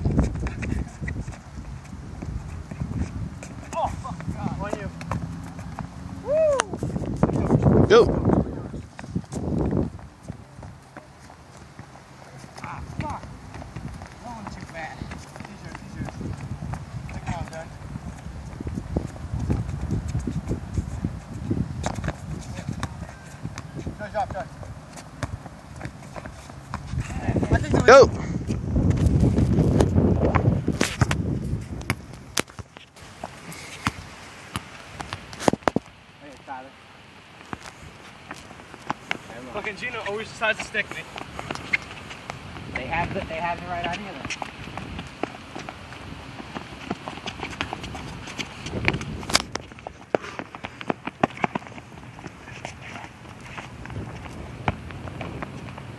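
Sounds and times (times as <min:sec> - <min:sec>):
ball dribbling thuds: 0:00.0 - 0:06.0, 0:08.8 - 0:35.8, 0:37.4 - 0:55.9
sneakers running on hard court: 0:00.0 - 0:35.2, 0:38.2 - 0:55.9.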